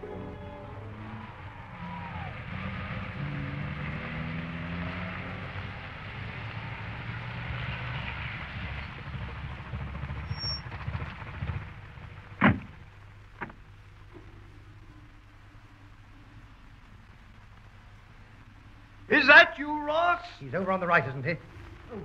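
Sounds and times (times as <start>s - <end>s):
car engine running: 0.8s - 13.6s.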